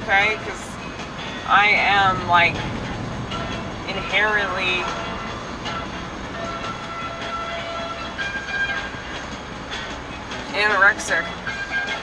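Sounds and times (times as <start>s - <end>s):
music from car stereo: 0.0s - 12.0s
road rumble inside car: 0.0s - 12.0s.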